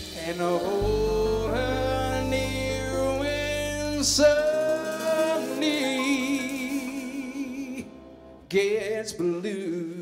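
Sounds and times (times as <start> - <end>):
piano chord: 0.0 - 9.7
low bass note: 0.7 - 5.4.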